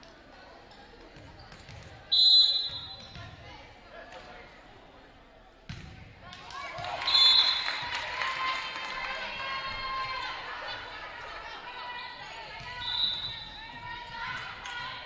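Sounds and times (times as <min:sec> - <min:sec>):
referee's whistle blasts: 0:02.1 - 0:03.1, 0:07.0 - 0:07.6, 0:12.7 - 0:13.6
players shouting: 0:06.7 - 0:15.0.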